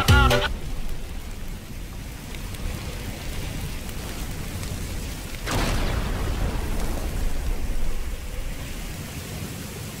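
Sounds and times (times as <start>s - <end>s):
steady rain: 0.0s - 10.0s
low thunder rumble: 0.5s - 9.5s.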